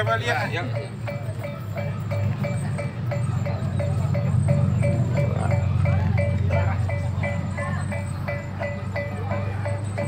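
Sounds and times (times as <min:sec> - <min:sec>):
metal percussion strikes: 0:00.0 - 0:10.0.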